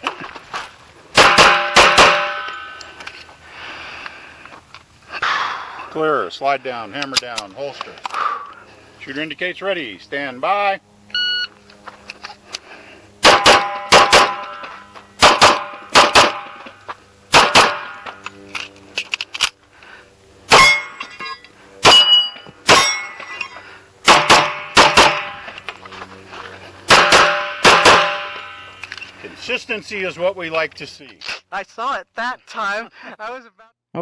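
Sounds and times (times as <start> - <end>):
pistol shots: 1.2 - 2.5, 13.2 - 14.6, 15.2 - 16.6, 17.3 - 18.0, 21.8 - 23.0, 24.0 - 25.3, 26.9 - 28.5
shot timer beep: 11.1 - 11.5.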